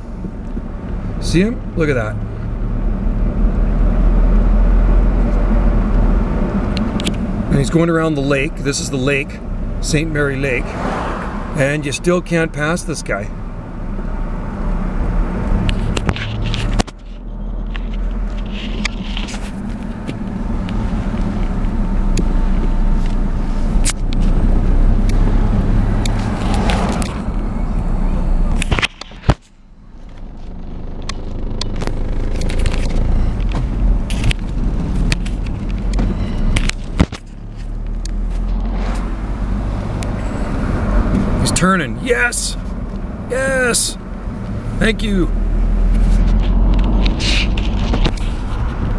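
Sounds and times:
car engine and road noise: 0.0s - 48.9s.

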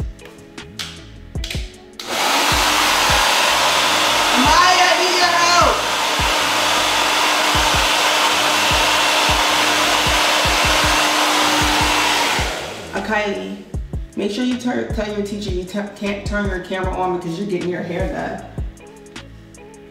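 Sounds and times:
hair dryer blowing: 2.0s - 13.9s.

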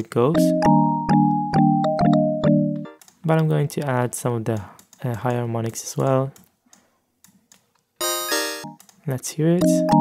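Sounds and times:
bright buzzy synthesizer notes: 0.3s - 3.0s, 8.0s - 8.8s, 9.6s - 10.0s.

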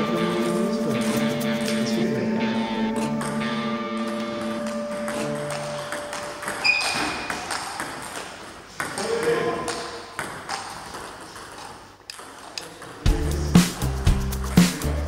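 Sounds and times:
held musical notes: 0.0s - 7.3s
table tennis balls clicking: 4.1s - 13.1s.

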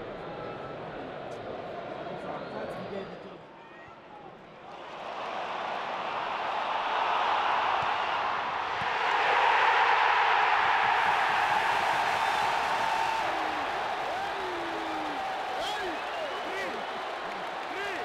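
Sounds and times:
stadium crowd cheering roar: 4.5s - 18.0s.

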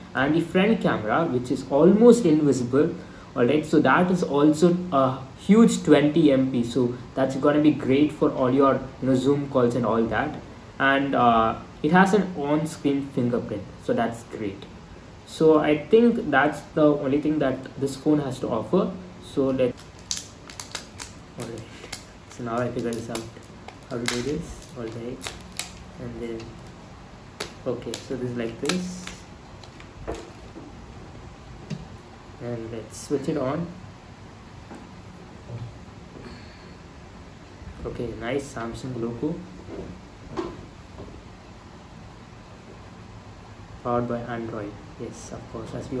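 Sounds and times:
person speaking: 0.0s - 30.5s, 32.4s - 33.8s
faint room hiss: 0.0s - 46.0s.

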